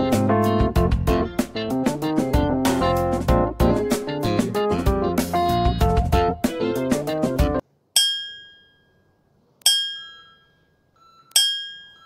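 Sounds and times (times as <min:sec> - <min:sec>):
bell-like chime dings: 0:08.0 - 0:12.0.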